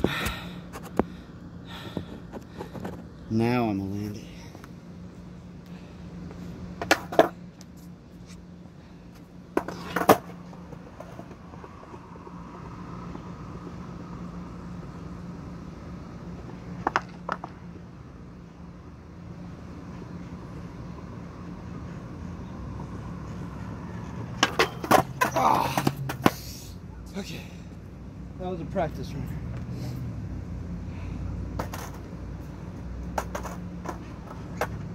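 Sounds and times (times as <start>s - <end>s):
skateboard wheels rolling on concrete: 0.0s - 4.7s, 6.2s - 26.8s, 31.4s - 34.9s
steady low hum: 0.0s - 34.9s
skateboard clacks: 6.8s - 7.3s, 9.6s - 11.4s, 16.8s - 17.6s, 24.3s - 26.4s, 33.1s - 34.9s.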